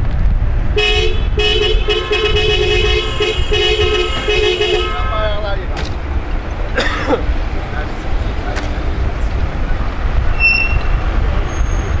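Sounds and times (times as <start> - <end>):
rumble of car engines and traffic: 0.0 - 12.0.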